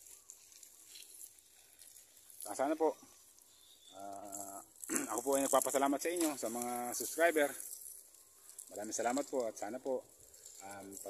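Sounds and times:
soft high hiss: 0.0s - 11.0s.

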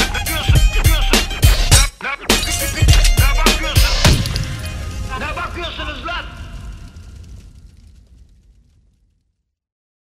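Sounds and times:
rap vocals: 0.0s - 4.4s, 5.1s - 6.6s
hip hop beat: 0.0s - 6.0s.

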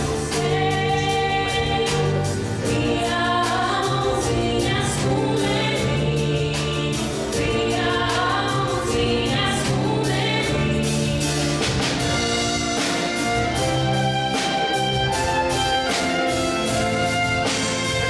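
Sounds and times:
choir singing with instruments: 0.0s - 18.0s.

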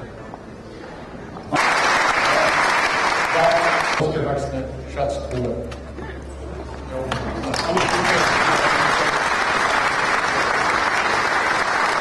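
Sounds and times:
audience applauding: 1.5s - 4.1s, 7.4s - 12.0s.

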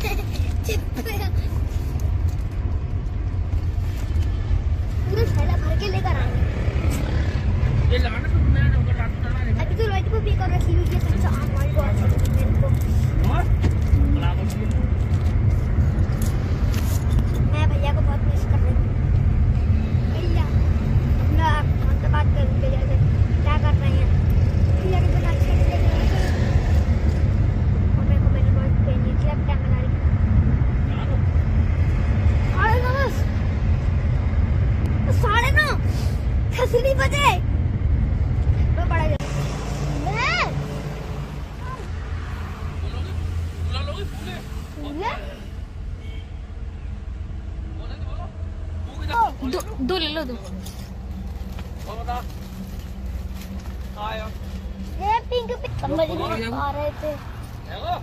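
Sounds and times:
car interior rumble: 0.0s - 58.0s.

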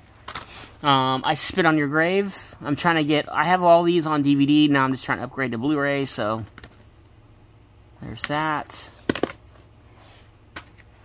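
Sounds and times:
plastic case clacking: 8.2s - 9.4s.

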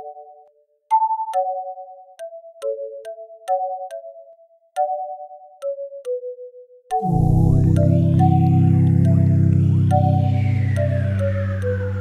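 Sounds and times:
note onset clicks: 6.9s - 12.0s
slow melody of sampled vocal notes: 6.9s - 12.0s.

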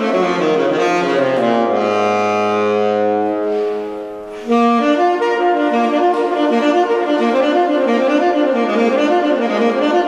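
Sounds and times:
tenor saxophone notes: 0.0s - 10.0s.

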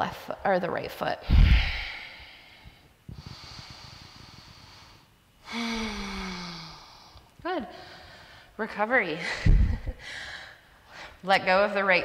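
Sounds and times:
exhale blowing on microphone: 1.2s - 7.1s
woman breathing heavily: 1.2s - 11.3s.

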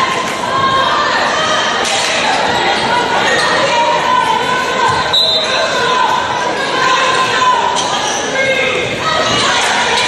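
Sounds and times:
crowd and players shouting: 0.0s - 10.0s.

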